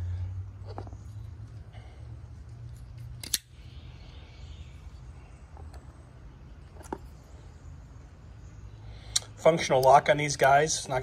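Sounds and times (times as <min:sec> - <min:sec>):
low steady hum: 0:00.0 - 0:11.0
folding knife blade snapping open: 0:03.2 - 0:03.5.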